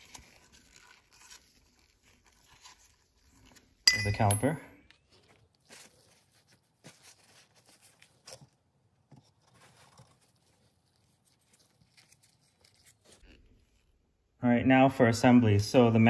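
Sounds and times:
paper towel rustling: 0:05.0 - 0:08.7.

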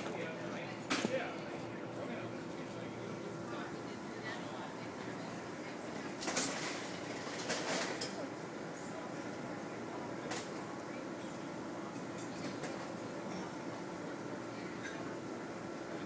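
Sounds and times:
background murmur: 0:00.0 - 0:16.0.

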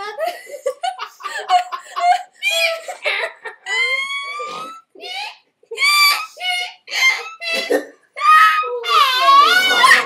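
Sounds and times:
woman laughing hysterically: 0:00.1 - 0:07.5
woman squealing high-pitched: 0:03.7 - 0:07.6, 0:08.2 - 0:10.0.

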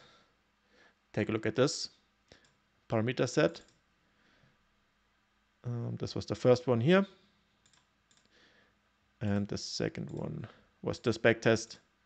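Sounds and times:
faint mouse clicks: 0:02.3 - 0:02.6, 0:07.6 - 0:08.3.

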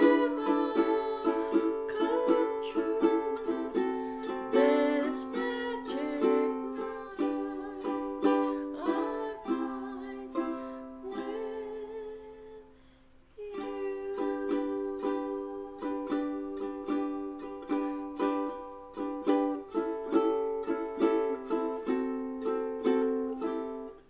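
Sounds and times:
woman singing: 0:00.0 - 0:12.8, 0:13.4 - 0:18.5
ukulele strumming chords: 0:00.0 - 0:24.0.

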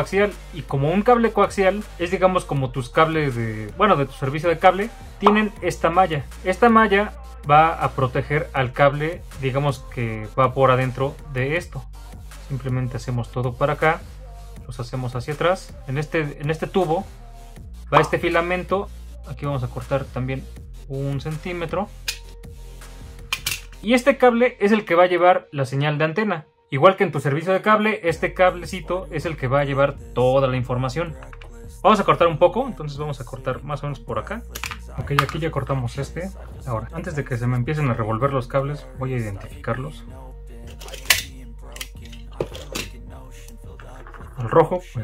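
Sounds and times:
faint background music: 0:00.0 - 0:45.0
plastic connectors clicking: 0:23.3 - 0:23.8, 0:34.5 - 0:35.4, 0:40.7 - 0:44.2
knife scraping cable: 0:40.7 - 0:44.2.

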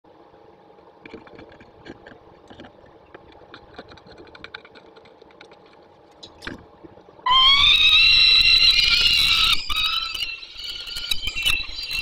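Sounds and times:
falcon wailing call: 0:07.3 - 0:11.0.

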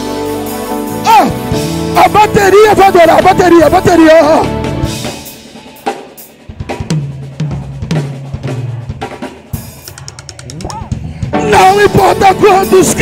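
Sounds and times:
acoustic drum kit playing: 0:00.0 - 0:13.0
full band playing: 0:00.0 - 0:13.0.

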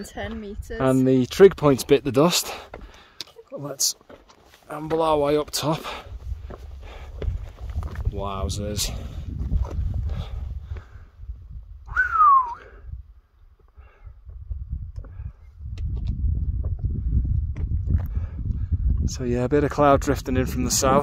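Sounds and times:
wind buffeting microphone: 0:00.0 - 0:01.9, 0:05.8 - 0:21.0.

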